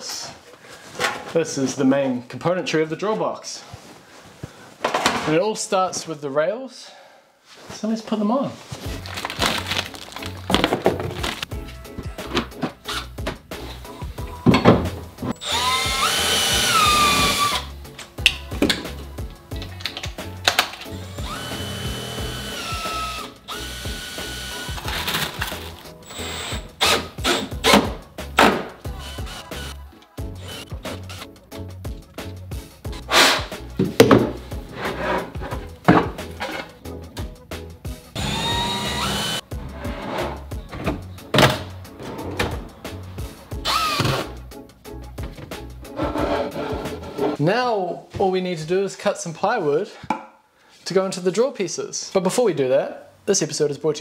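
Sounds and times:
background music: 7.9 - 50.0
cordless drill whining: 15.4 - 17.7, 21.0 - 25.2, 26.0 - 27.1, 29.0 - 29.8, 30.4 - 31.3, 38.2 - 39.4, 43.6 - 44.3.

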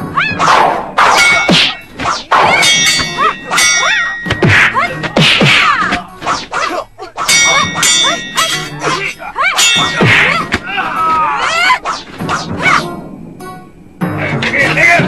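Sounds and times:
metal blades clashing: 0.4 - 12.8.

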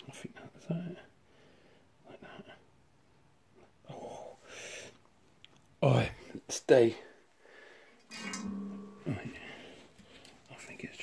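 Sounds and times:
man humming: 8.8 - 9.7
man muttering: 9.0 - 9.6.

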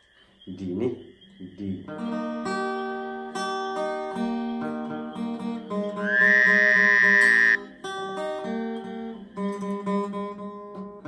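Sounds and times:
acoustic guitar strumming chords: 1.9 - 11.0
person singing high note: 6.0 - 7.6.

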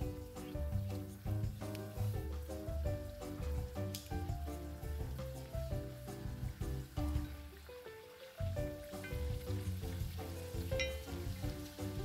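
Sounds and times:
background music with bass line: 0.0 - 7.6, 8.4 - 12.0
slices sizzling in hot oil: 0.0 - 12.0.

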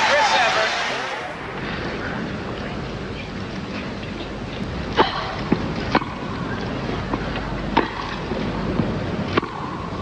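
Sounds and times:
tennis ball racquet hits: 9.3 - 9.7.

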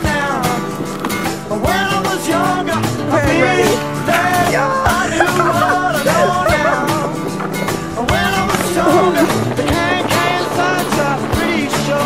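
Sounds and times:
man singing: 0.0 - 0.8, 1.4 - 12.0
rock music: 0.0 - 12.0.

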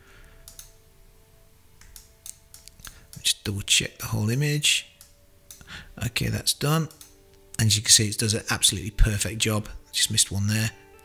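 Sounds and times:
faint steady hum: 0.0 - 11.0
faint computer mouse clicks: 0.4 - 0.8.

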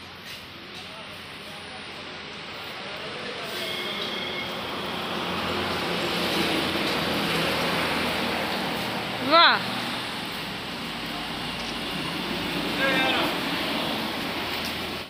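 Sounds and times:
vehicle passing on highway: 4.6 - 15.0.

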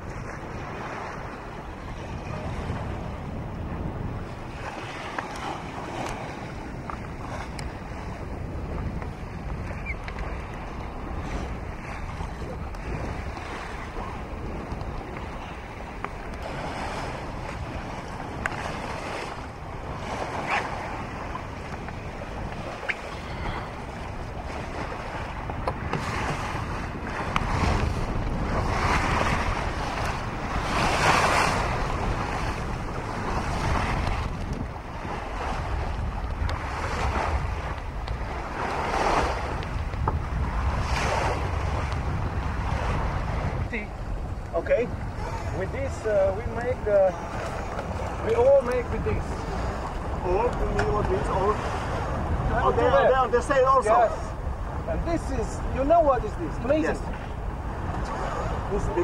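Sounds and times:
water rushing along hull: 0.0 - 59.0
wind buffeting microphone: 0.0 - 59.0.

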